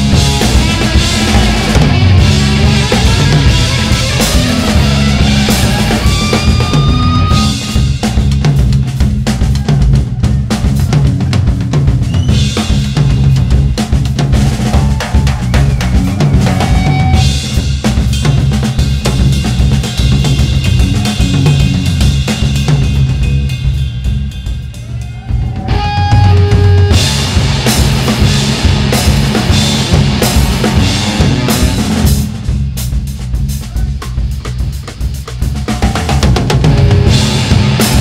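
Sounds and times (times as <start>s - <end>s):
electric guitar: 0.0s - 8.3s, 14.6s - 17.6s, 25.2s - 32.5s, 35.8s - 38.0s
busy drum kit hits: 0.0s - 38.0s
live rock band playing: 0.0s - 38.0s.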